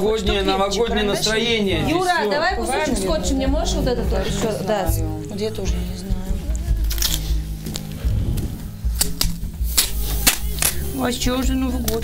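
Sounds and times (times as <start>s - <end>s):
background music: 0.0s - 12.0s
adhesive tape clicks and crackles: 9.0s - 10.8s.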